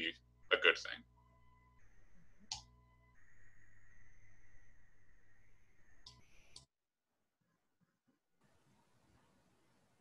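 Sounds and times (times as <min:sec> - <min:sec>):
low hum: 0:00.0 - 0:06.6.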